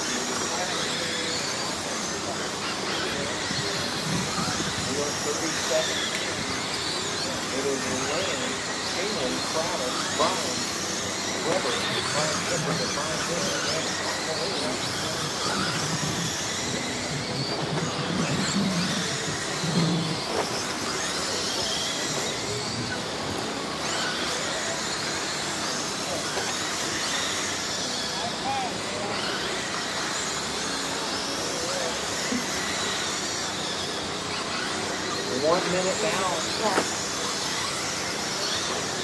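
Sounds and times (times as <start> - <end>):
people's voices: 0.0 - 39.0
rc car motors whining: 0.0 - 39.0.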